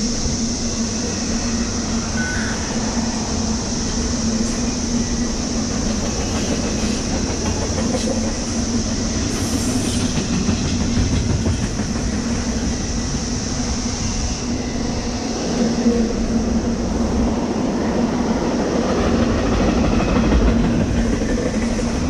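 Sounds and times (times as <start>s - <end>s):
train wheels rumbling on rail: 0.0s - 22.0s
rhythmic clickety-clack: 4.5s - 12.9s, 18.8s - 22.0s.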